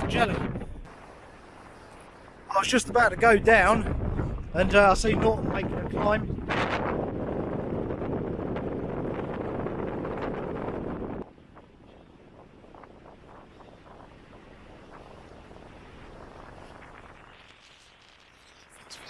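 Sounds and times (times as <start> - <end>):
wind buffeting microphone: 0.0 - 17.9.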